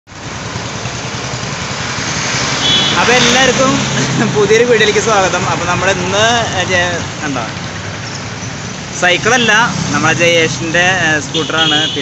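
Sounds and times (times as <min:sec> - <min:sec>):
road and traffic noise: 0:00.1 - 0:12.0
scooter engine idling: 0:00.2 - 0:02.9, 0:06.2 - 0:08.9.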